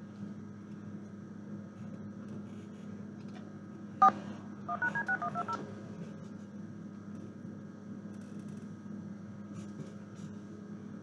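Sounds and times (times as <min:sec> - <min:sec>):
steady low hum: 0:00.0 - 0:11.0
touch-tone dialing beeps: 0:04.7 - 0:05.6.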